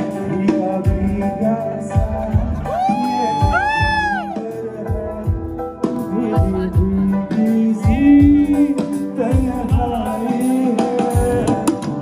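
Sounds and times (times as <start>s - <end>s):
live band with deep drums: 0.0s - 12.0s
person singing long notes: 1.2s - 5.4s.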